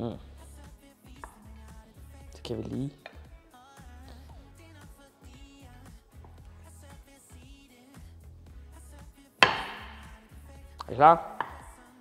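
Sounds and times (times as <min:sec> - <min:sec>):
background music: 0:00.0 - 0:12.0
knife chopping on wooden board: 0:09.4 - 0:10.0, 0:11.3 - 0:11.8.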